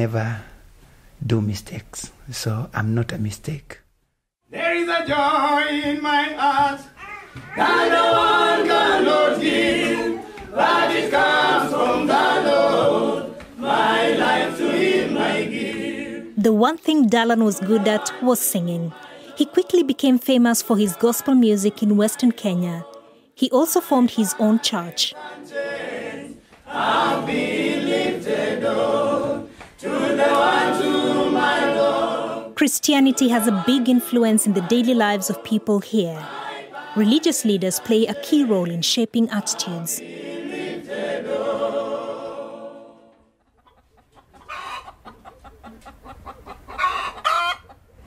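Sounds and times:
choir singing gospel unaccompanied: 4.5 - 43.4
rooster crowing: 7.0 - 10.9, 44.4 - 45.0, 46.7 - 47.7
chickens clucking: 43.3 - 48.0.

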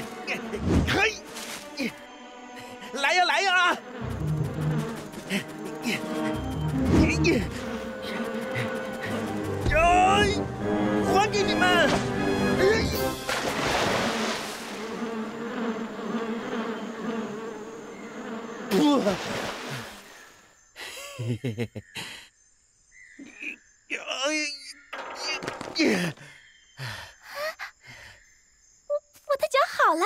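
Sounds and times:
bees buzzing: 0.0 - 20.4
loud water splash: 13.1 - 14.9.

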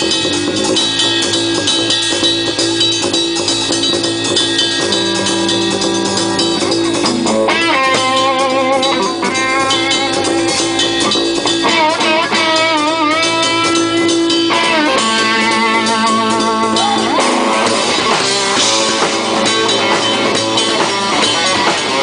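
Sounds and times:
drum kit: 0.0 - 22.0
electric guitars: 0.0 - 22.0.

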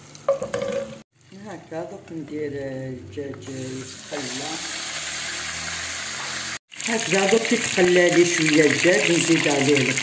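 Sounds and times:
chicken frying in oil: 3.6 - 10.0.

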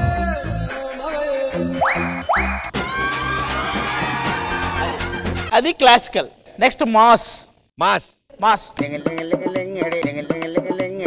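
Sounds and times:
background music with beat: 0.0 - 5.5, 8.6 - 11.0.

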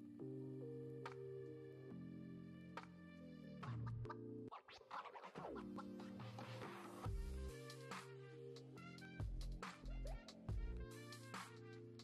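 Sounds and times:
background music with held notes: 0.0 - 4.5, 5.5 - 12.0
scratch-like effects: 3.6 - 8.3.

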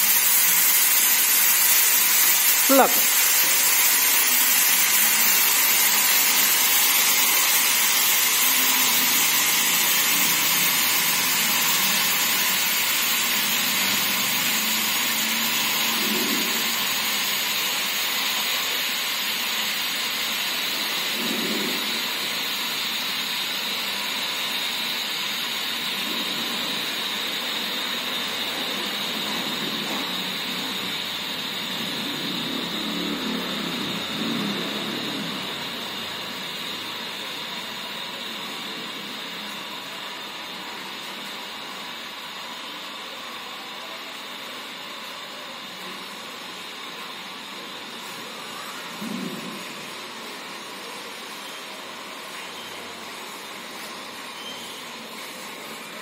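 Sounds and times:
lift drive whirring hiss: 0.0 - 56.0.

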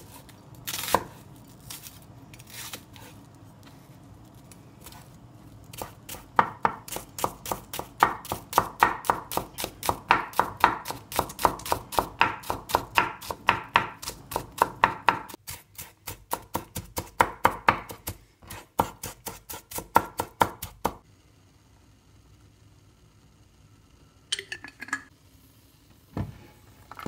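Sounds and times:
knife chopping on wooden board: 5.7 - 21.0.

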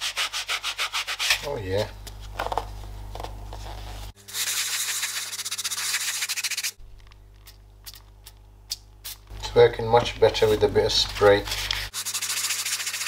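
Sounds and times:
aerosol spray can hissing: 4.3 - 6.8, 11.8 - 13.0.

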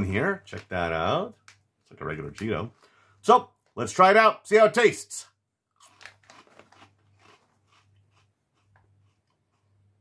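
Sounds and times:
soft chewing crunches: 5.7 - 10.0.

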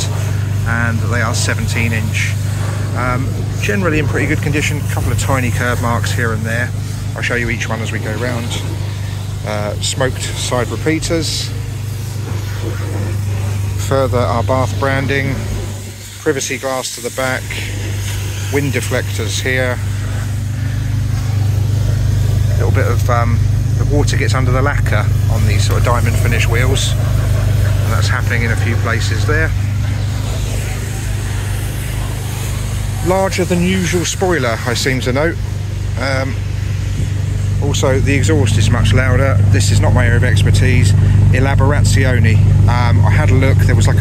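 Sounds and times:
car engine idling: 0.0 - 44.0.

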